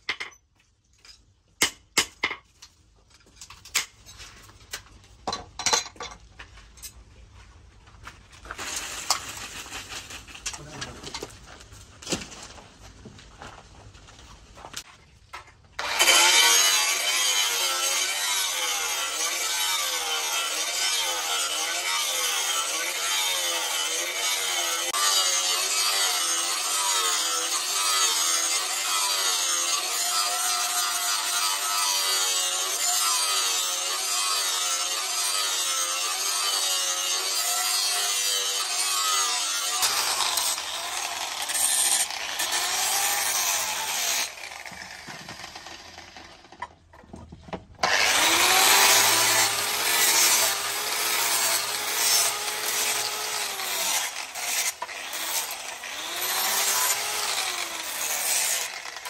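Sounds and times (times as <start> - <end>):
angle grinder grinding metal: 15.8 - 46.7, 47.8 - 59.0.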